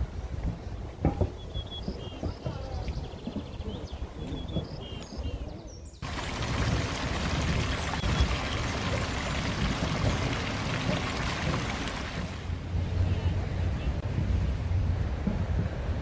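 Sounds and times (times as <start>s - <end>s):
outdoor background: 0.0s - 16.0s
water running over rocks: 6.0s - 12.5s.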